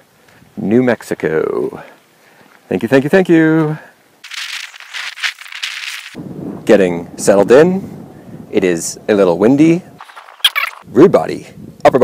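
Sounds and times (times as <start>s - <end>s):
dry high-pitched rattling rustle: 4.2s - 6.2s.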